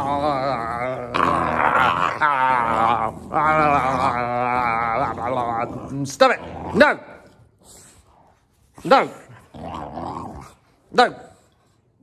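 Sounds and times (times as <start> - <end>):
puppy growling: 0.0 - 7.4, 9.2 - 10.8.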